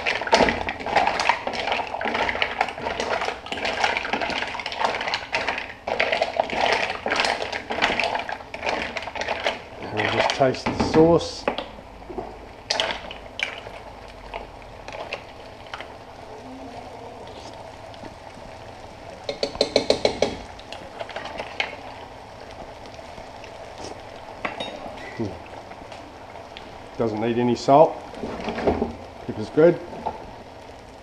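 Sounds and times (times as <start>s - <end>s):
simmering sauce hissing: 0.0s - 31.0s.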